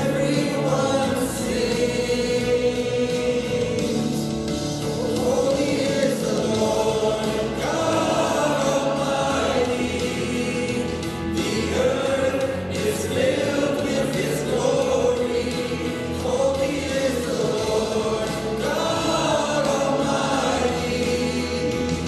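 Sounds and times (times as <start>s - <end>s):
man singing into microphone: 0.0s - 4.3s, 4.9s - 22.0s
group singing worship song: 0.0s - 22.0s
musical accompaniment: 0.0s - 22.0s.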